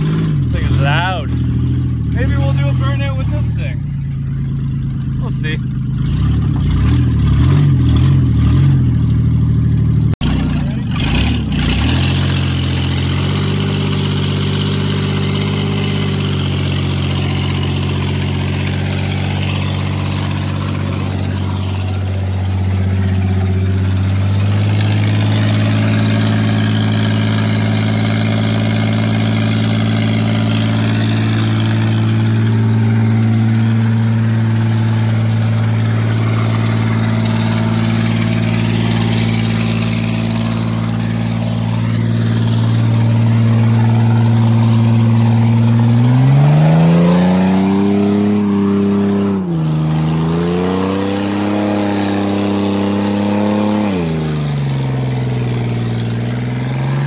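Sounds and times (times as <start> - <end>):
pickup engine at high revs: 0.0 - 4.1, 5.2 - 9.2, 10.2 - 57.0.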